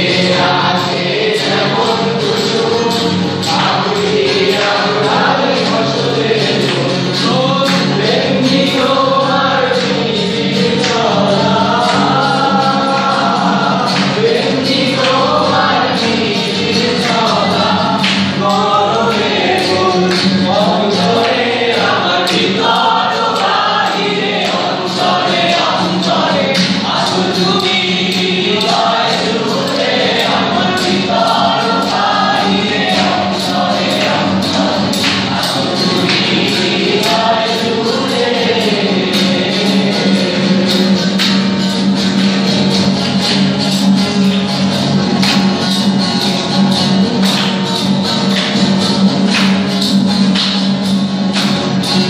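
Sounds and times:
acoustic guitar: 0.0 - 52.0
group singing: 0.0 - 52.0.

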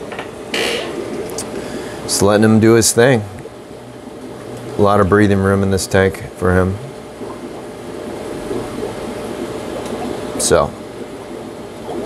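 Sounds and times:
aquarium equipment humming: 0.0 - 12.0
creak: 0.5 - 1.0.

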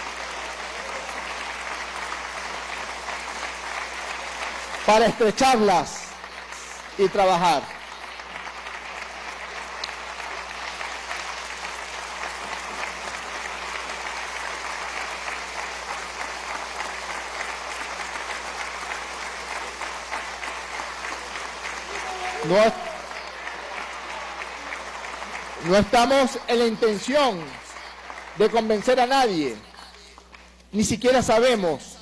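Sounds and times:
crowd applause: 0.0 - 30.6.

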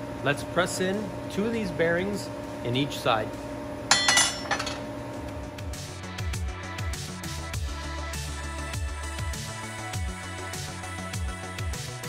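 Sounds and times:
steel parts clinking: 3.9 - 4.9.

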